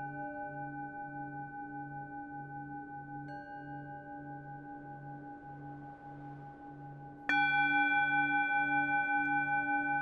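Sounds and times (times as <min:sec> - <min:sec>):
singing bowl ringing: 0:00.0 - 0:10.0.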